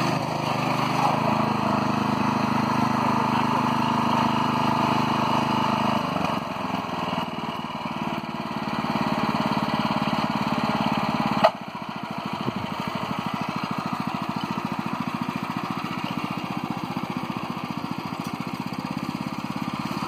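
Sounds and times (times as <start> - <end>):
power weeder engine running: 0.0 - 20.0.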